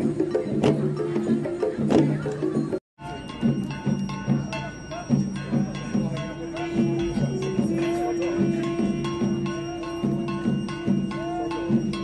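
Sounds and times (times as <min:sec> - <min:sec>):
long drums beaten: 0:00.0 - 0:12.0.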